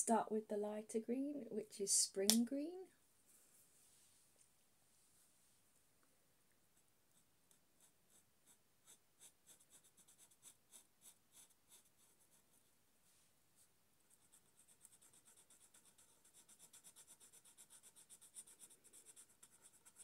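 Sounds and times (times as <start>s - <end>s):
marker pen scratching paper: 6.8s - 12.7s, 14.1s - 20.0s.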